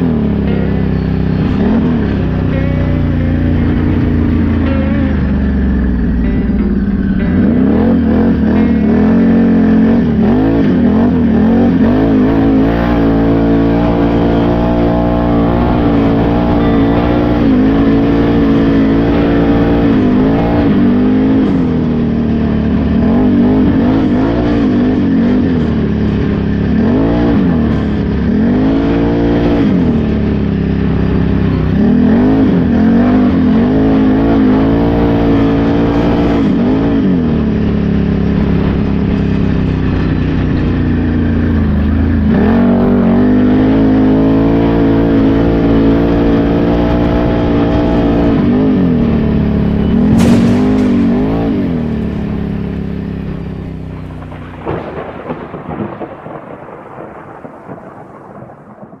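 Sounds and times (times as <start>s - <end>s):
atv engine revving: 0.0s - 55.5s
sharp knock: 50.0s - 53.0s.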